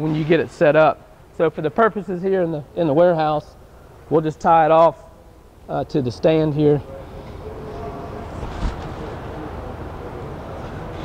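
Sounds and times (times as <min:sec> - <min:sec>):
rope handling sounds: 0:08.2 - 0:09.3.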